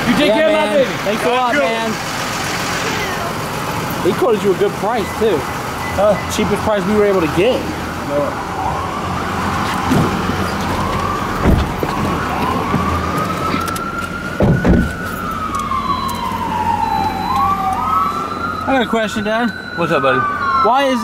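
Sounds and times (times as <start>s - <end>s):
emergency siren wailing: 0.0s - 2.1s, 2.8s - 21.0s
loud thump: 11.4s - 12.0s, 14.4s - 15.0s.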